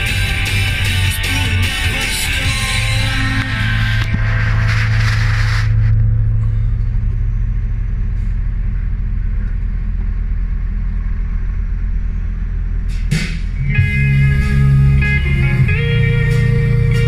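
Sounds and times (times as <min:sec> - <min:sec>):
diesel engine idling: 0:00.0 - 0:17.0.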